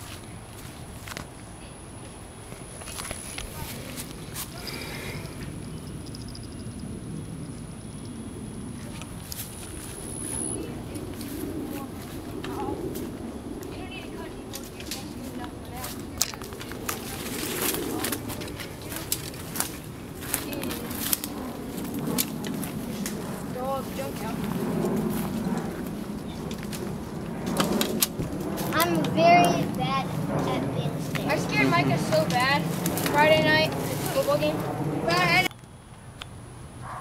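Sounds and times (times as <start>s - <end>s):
footsteps crunching on dirt trail: 0.0s - 1.4s, 2.5s - 4.7s, 8.8s - 35.4s
indistinct voices: 28.6s - 35.5s.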